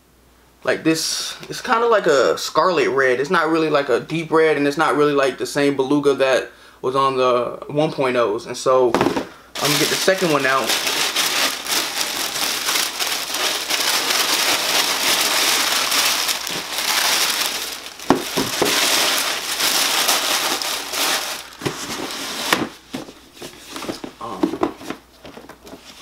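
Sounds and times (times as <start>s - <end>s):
tissue paper crinkling: 9.0s - 24.2s.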